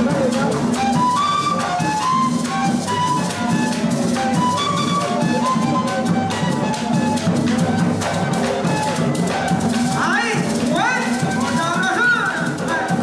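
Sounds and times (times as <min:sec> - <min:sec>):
duct flute melody: 0:00.0 - 0:13.0
hand drumming: 0:00.0 - 0:13.0
maracas: 0:00.0 - 0:13.0.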